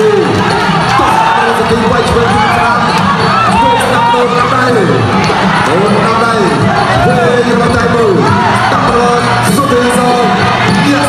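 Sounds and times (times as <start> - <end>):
drum beats: 0.0 - 11.0.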